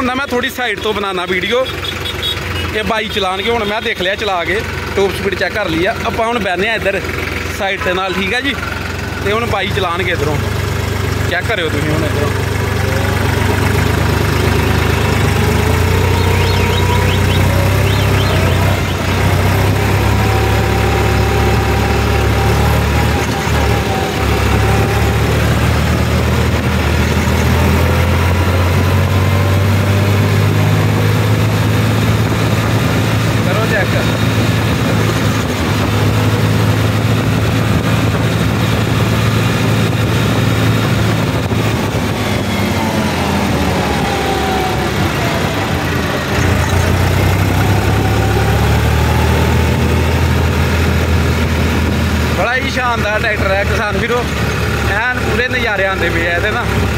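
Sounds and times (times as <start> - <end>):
tractor diesel engine running: 0.0 - 56.9.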